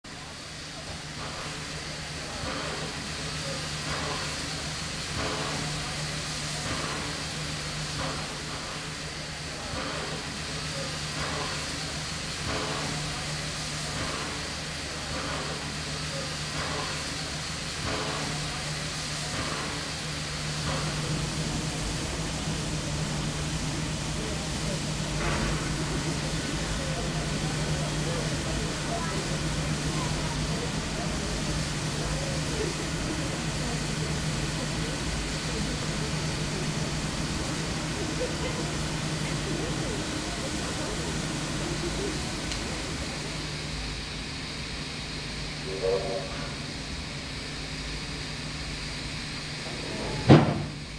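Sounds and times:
steam locomotive venting steam: 0.1 - 50.9.

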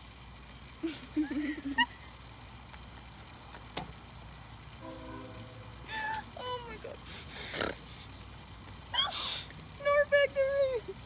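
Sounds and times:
women laughing hard: 0.8 - 2.1.

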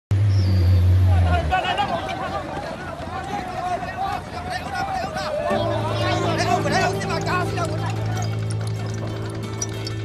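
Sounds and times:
heavy vehicle engine droning: 0.1 - 4.3
crowd of men shouting: 1.1 - 8.2.

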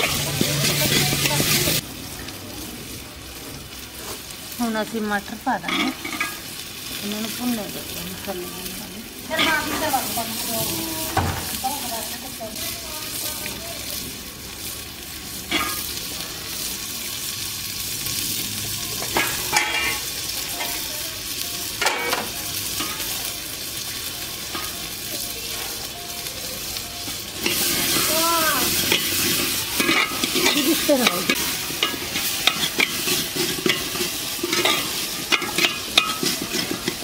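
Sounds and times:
peas sizzling in a pot: 0.0 - 37.0.

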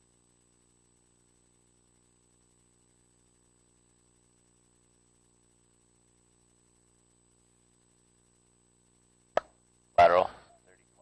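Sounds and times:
faint steady hum: 0.0 - 11.0
person speaking: 10.0 - 11.0.

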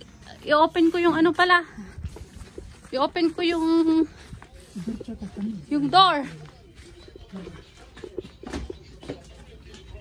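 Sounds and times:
faint voices: 0.0 - 10.0.

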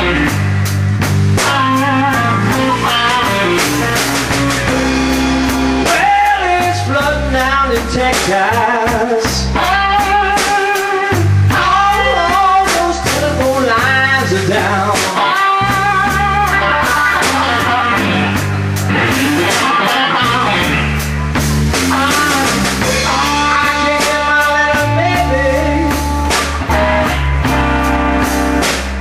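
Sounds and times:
drum kit: 0.0 - 29.0
electric bass: 0.0 - 29.0
electric guitar lead lines: 0.0 - 29.0.

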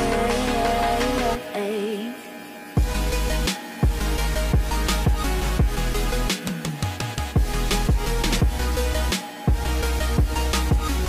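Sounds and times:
pop music with heavy bass beat: 0.0 - 11.0.

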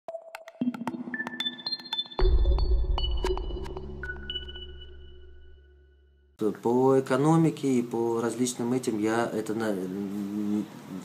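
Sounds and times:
electronic blips and clicks: 0.1 - 5.6.

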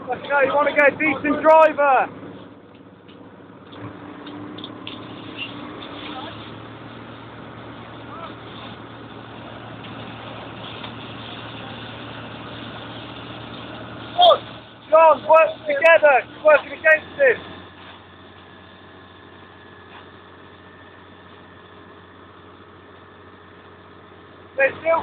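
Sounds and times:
pump engine humming: 0.0 - 25.0
hose jet spraying water: 4.2 - 18.7.

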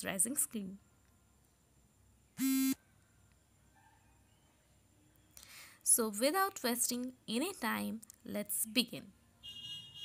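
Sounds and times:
short buzzy electronic beep: 2.4 - 2.8.

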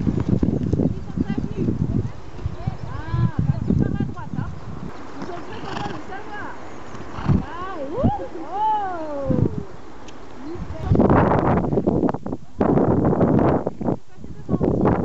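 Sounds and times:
horse hoofbeats on grass: 0.0 - 7.8.

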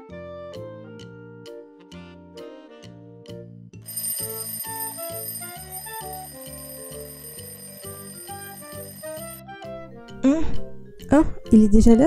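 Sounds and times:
alarm clock ringing: 3.9 - 9.4
light background music: 9.0 - 12.0.

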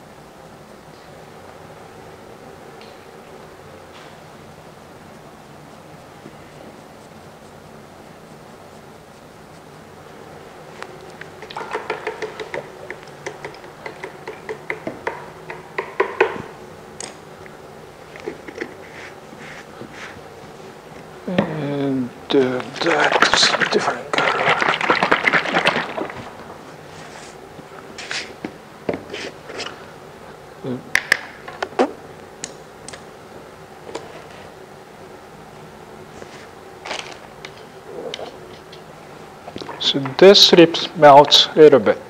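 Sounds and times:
faint room hum: 0.0 - 42.0.

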